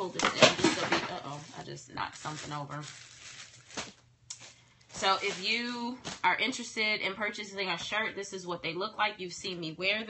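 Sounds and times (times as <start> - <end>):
objects rustling: 0.0 - 6.3.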